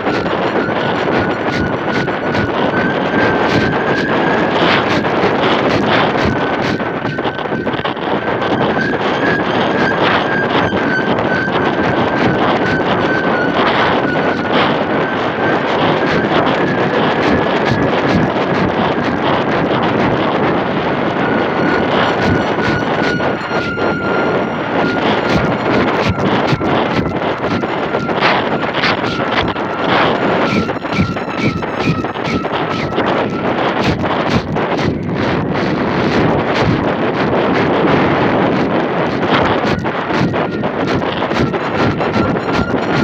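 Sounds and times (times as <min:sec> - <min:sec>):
thin high tone: 0:00.0 - 0:18.0, 0:20.4 - 0:33.8, 0:40.4 - 0:43.0
wind buffeting microphone: 0:00.0 - 0:43.0.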